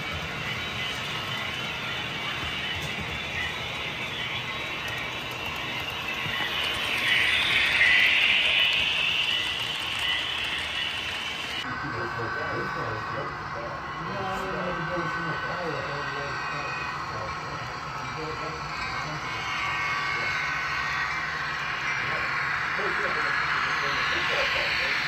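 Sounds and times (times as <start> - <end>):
model train cars rolling: 0.0 - 11.6.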